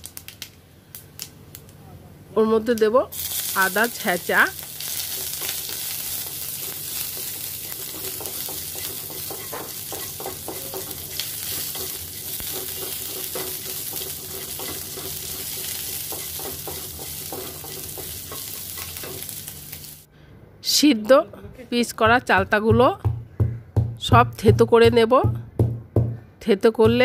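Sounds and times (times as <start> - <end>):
spices sizzling in hot oil: 3.1 - 20.1.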